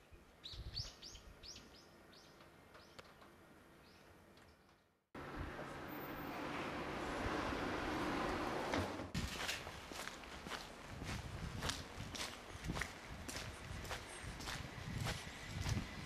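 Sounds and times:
footsteps on paved street: 9.1s - 16.0s.

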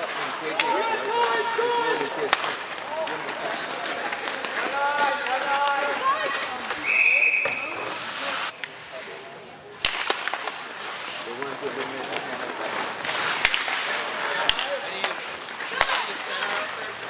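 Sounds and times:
hockey sticks striking puck: 0.0s - 8.7s, 9.8s - 17.0s
spectators chatting: 0.0s - 17.0s
short high whistle: 6.8s - 7.7s.

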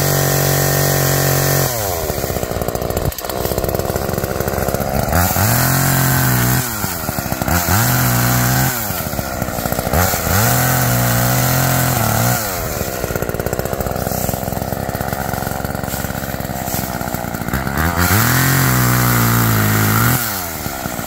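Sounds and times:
chainsaw engine idling and revving: 0.0s - 21.0s.

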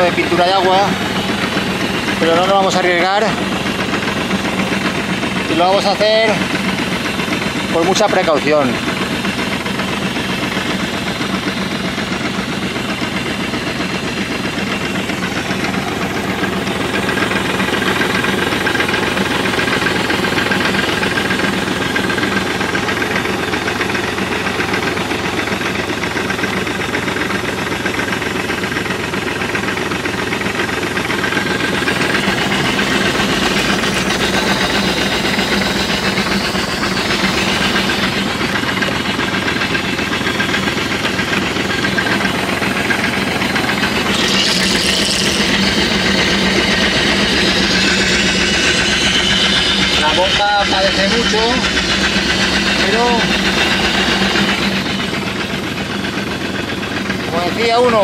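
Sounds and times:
tractor engine running: 0.0s - 58.0s
diaphragm pump straining: 30.9s - 57.4s.

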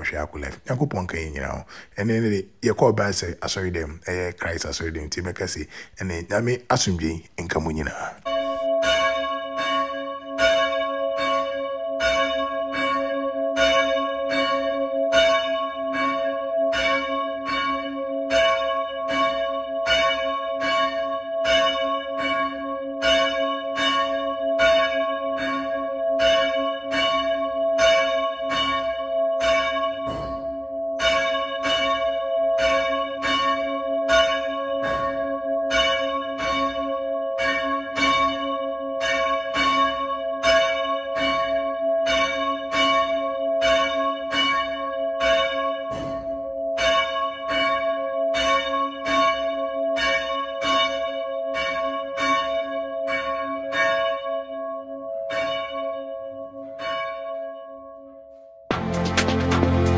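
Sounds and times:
church bell ringing: 0.0s - 58.4s.

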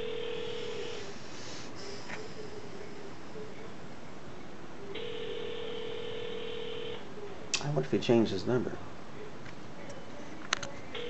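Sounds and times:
telephone ringback tone: 0.0s - 1.0s, 5.0s - 7.0s.

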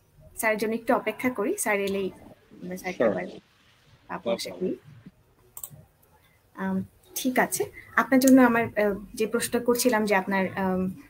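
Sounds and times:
person speaking: 0.4s - 3.4s, 4.1s - 5.0s, 6.6s - 11.0s.

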